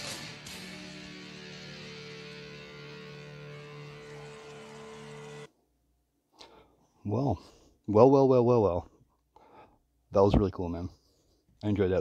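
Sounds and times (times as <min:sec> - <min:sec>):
electric guitars ringing chord: 0:00.0 - 0:05.5.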